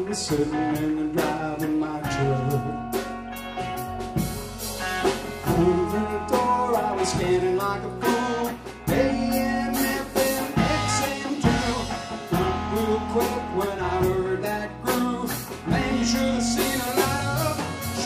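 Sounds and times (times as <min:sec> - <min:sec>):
country-rock band playing: 0:00.0 - 0:18.0.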